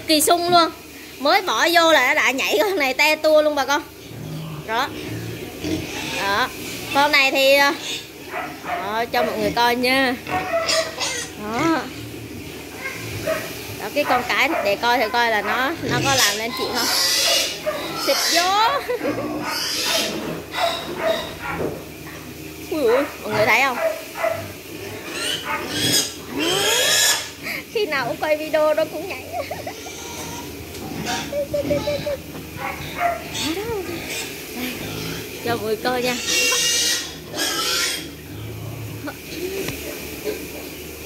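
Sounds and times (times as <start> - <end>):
wild boars grunting and squealing: 3.6 - 40.9.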